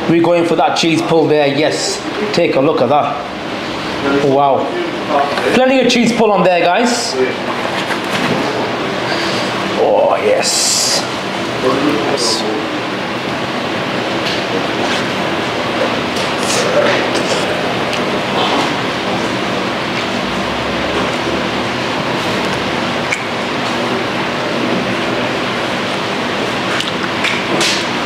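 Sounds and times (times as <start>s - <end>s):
steady background noise: 0.0s - 28.0s
man chewing food: 26.6s - 27.4s.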